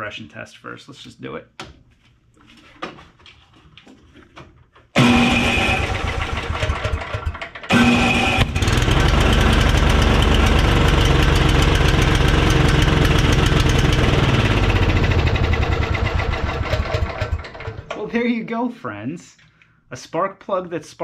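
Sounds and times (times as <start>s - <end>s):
snowblower engine running: 5.0s - 17.9s.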